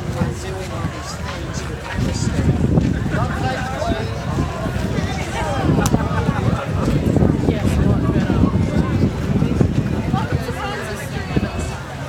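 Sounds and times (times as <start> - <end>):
crowd chatter: 0.0 - 12.0
wind buffeting microphone: 0.0 - 12.0.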